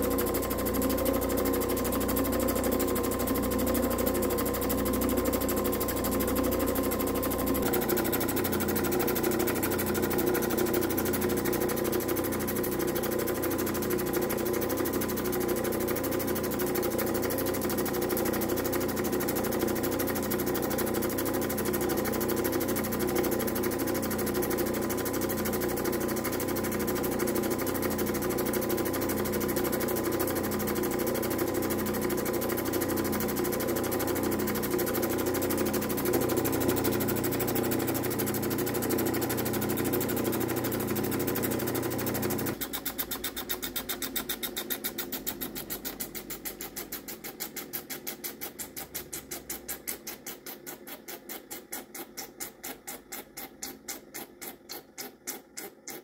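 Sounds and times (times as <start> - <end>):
grinding machine running: 0.0 - 56.0
stone grinding on wheel: 42.6 - 56.0.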